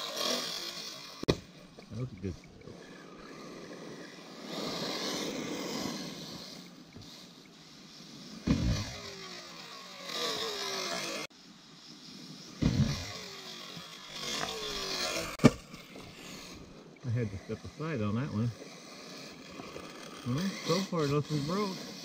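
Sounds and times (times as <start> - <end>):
electric motor whine: 0.0 - 22.0
tyres on gravel: 0.0 - 22.0
heavy thuds: 8.4 - 9.0, 12.6 - 13.1.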